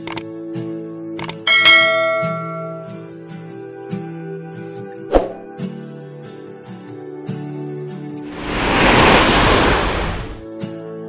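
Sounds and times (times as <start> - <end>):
quick clicks: 0.0 - 0.2, 1.2 - 1.4
bright bell chime: 1.4 - 3.1.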